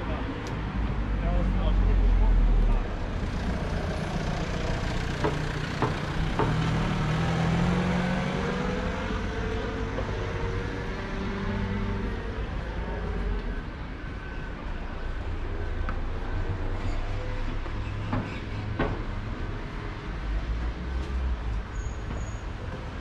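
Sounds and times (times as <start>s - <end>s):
low traffic rumble: 0.0s - 23.0s
vehicle engine passing: 3.1s - 13.3s.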